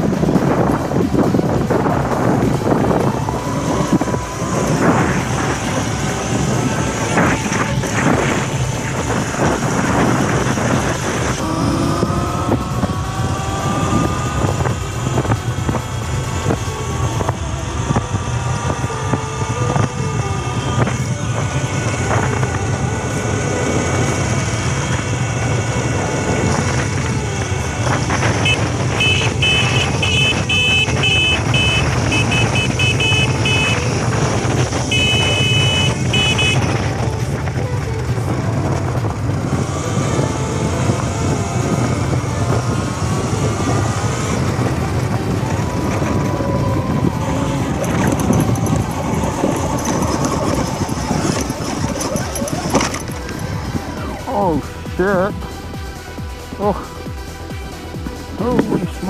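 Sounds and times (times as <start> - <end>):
electric motor whine: 0.0 - 54.9
tyre noise: 0.0 - 59.0
wind rumble: 0.0 - 59.0
short high-pitched tones: 28.4 - 34.0, 34.8 - 36.8.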